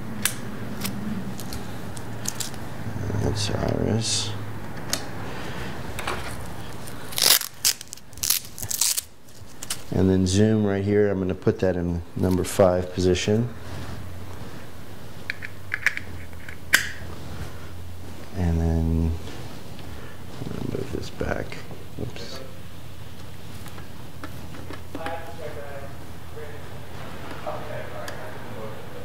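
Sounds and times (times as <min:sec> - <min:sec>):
cable rustling and scraping: 0:00.2 - 0:02.7, 0:04.9 - 0:09.9.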